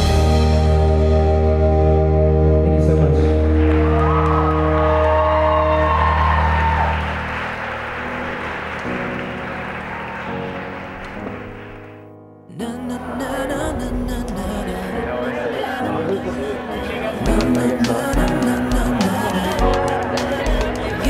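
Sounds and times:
live band holding a chord: 0.0 - 11.9, 14.0 - 21.0
audience applause and cheering: 3.0 - 12.0, 15.9 - 21.0.

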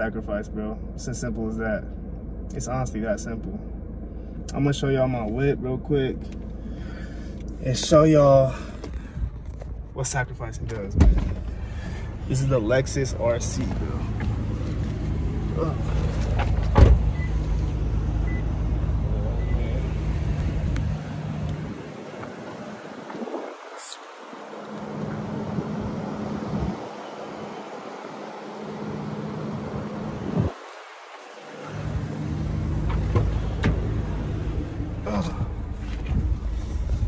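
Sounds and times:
car engine idling: 0.0 - 37.0
sharp thump: 16.7 - 17.1.

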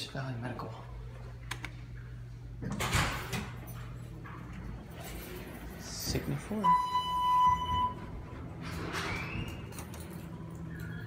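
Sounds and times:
elevator doors sliding open: 2.7 - 11.0.

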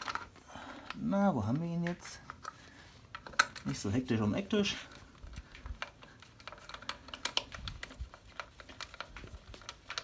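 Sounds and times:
metal on plastic handling: 0.0 - 0.4.

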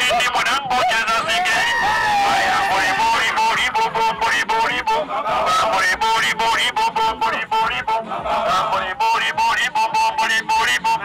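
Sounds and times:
group of voices chanting: 1.5 - 6.4, 7.1 - 9.0.

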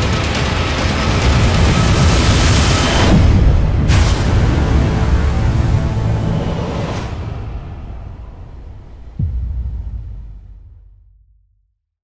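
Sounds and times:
breaking waves: 0.0 - 9.2
deep rumble: 0.0 - 11.8
rushing wind: 0.9 - 10.3.

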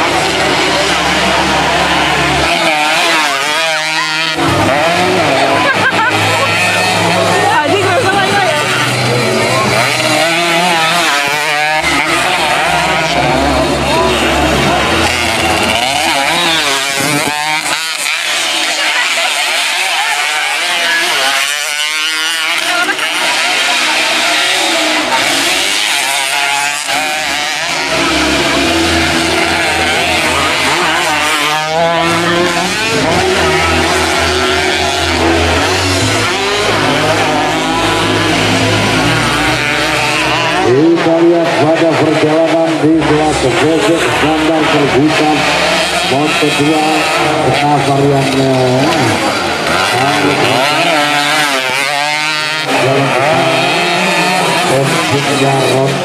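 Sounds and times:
motorcycle engines revving: 0.0 - 56.0.

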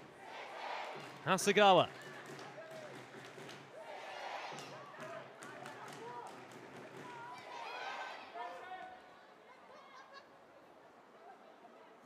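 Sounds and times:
low crowd murmur: 0.0 - 12.0.

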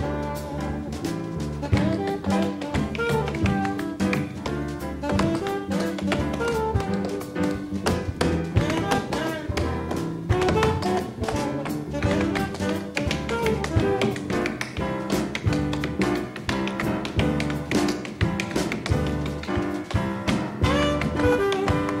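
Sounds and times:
jazz band playing: 0.0 - 22.0
tap shoes on wooden stage: 0.0 - 22.0.

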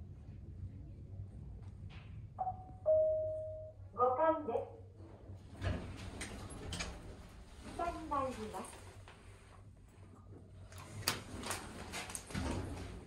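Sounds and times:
elevator two-tone chime: 2.4 - 3.8
recorded voice announcement: 3.9 - 4.9
elevator doors sliding open: 5.3 - 8.2, 10.8 - 13.0.

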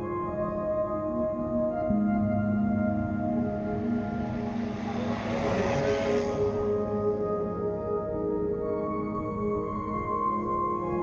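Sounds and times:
soft ambient music: 0.0 - 11.0
truck passing by: 3.8 - 7.2.

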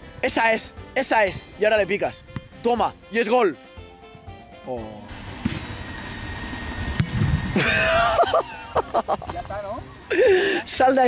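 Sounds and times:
outdoor background rumble: 5.1 - 10.7.

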